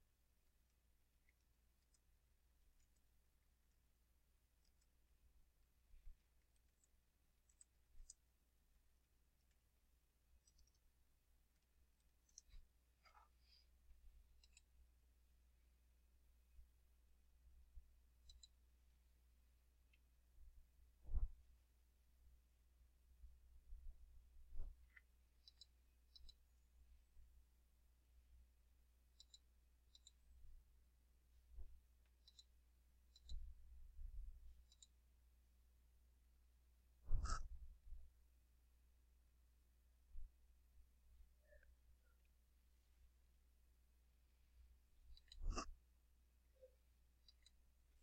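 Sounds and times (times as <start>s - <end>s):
faint clicks: 10.4s - 10.9s, 14.4s - 14.8s, 24.8s - 26.5s, 29.1s - 30.2s, 31.6s - 33.5s, 34.6s - 35.0s, 45.1s - 45.7s, 46.6s - 47.6s.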